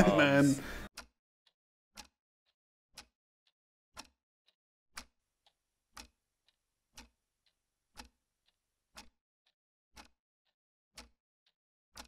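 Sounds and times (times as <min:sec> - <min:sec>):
clock ticking: 0:00.0 - 0:01.2, 0:02.0 - 0:02.2, 0:02.9 - 0:03.2, 0:04.0 - 0:04.2, 0:05.0 - 0:10.2, 0:11.0 - 0:12.0.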